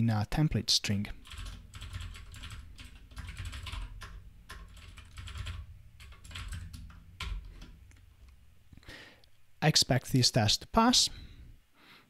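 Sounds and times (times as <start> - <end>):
computer keyboard typing: 1.2 - 8.0.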